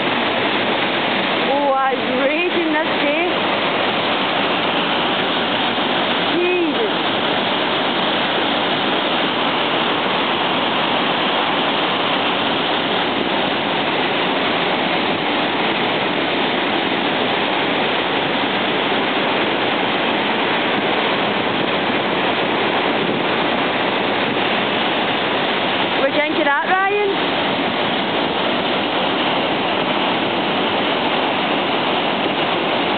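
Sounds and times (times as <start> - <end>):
white water rushing through gorge: 0.0 - 32.9.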